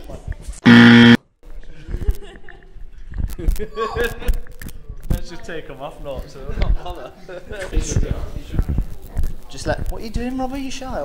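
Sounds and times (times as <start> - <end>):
harsh buzzer: 0.7 - 1.2.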